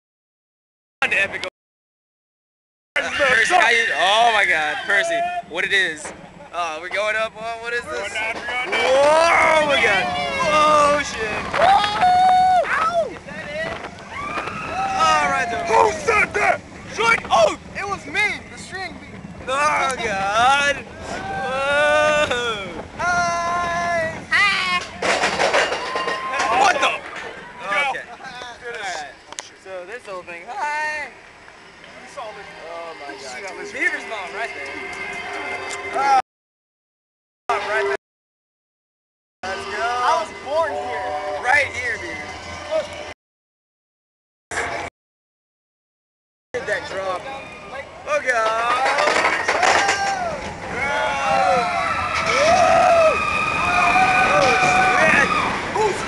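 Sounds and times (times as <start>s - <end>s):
roller coaster train clattering: 3.0s - 36.2s, 39.5s - 43.1s, 46.6s - 56.0s
rush of wind and ride noise: 3.0s - 36.2s, 46.6s - 56.0s
riders shouting: 8.6s - 17.7s, 19.8s - 25.0s, 49.0s - 56.0s.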